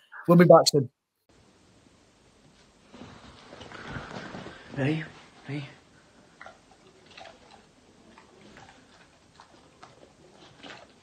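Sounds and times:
dog chewing treat: 0:06.4 - 0:11.0.

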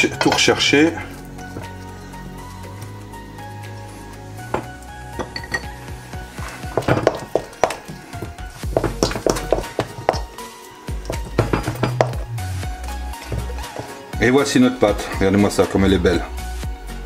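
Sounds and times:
background music: 0:00.0 - 0:17.0
wooden spoon scraping metal bowl: 0:04.5 - 0:10.3, 0:13.1 - 0:14.0.

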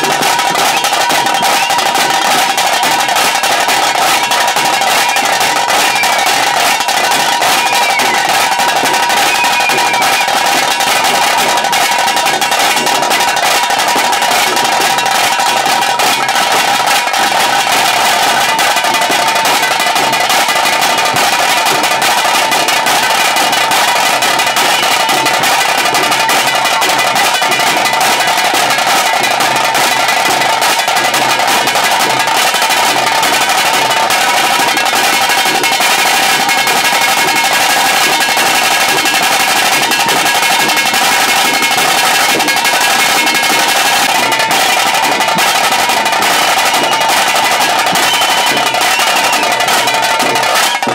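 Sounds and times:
drum band playing fast beat: 0:00.0 - 0:50.9.

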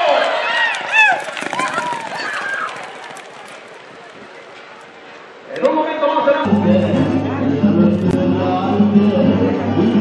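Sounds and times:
spectators shouting and whooping: 0:00.0 - 0:04.2
crowd noise: 0:00.0 - 0:10.0.

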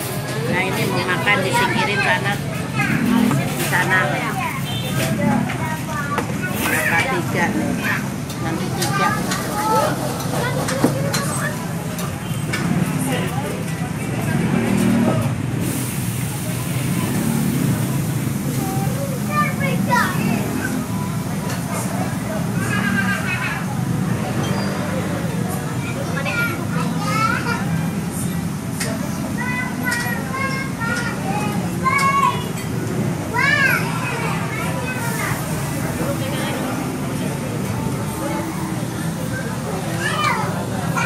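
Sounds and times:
people chattering: 0:00.0 - 0:41.0
child's high-pitched voice: 0:08.7 - 0:11.6, 0:18.6 - 0:20.4, 0:25.8 - 0:27.8, 0:29.3 - 0:32.6, 0:33.3 - 0:35.4, 0:39.9 - 0:41.0.

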